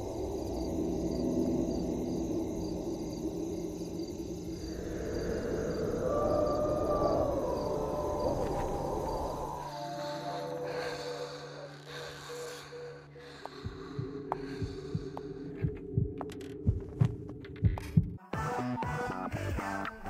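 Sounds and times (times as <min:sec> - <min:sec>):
wavering howl-like tone: 0:00.0 - 0:11.8
low rumbling drone: 0:00.0 - 0:18.2.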